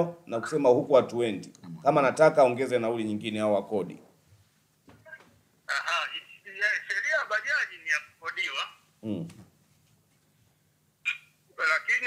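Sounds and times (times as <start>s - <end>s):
man speaking over telephone: 5.7s - 8.9s, 11.1s - 12.0s.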